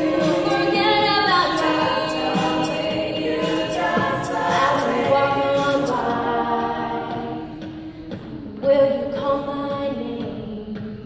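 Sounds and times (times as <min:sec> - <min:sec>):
female choir singing sustained chords: 0:00.0 - 0:10.9.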